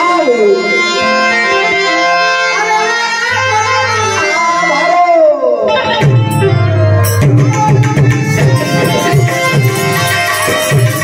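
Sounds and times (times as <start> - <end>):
harmonium melody: 0.0 - 11.0
tabla strokes: 5.8 - 11.0.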